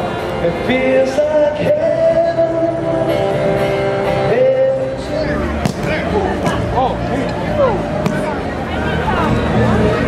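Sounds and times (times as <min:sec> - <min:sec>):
song with guitar and voice: 0:00.0 - 0:08.0.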